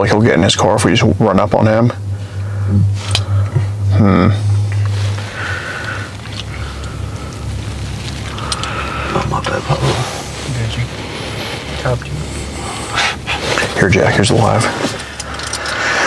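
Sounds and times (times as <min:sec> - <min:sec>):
steady low hum: 0:00.0 - 0:16.0
people talking indistinctly: 0:08.4 - 0:15.0.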